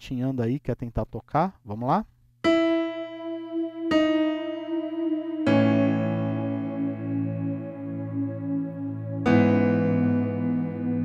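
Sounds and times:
electronic keyboard piano notes: 2.4 - 11.0.

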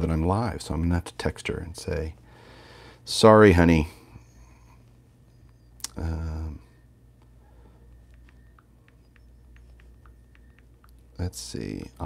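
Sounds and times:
light taps typing on phone: 7.2 - 11.2.

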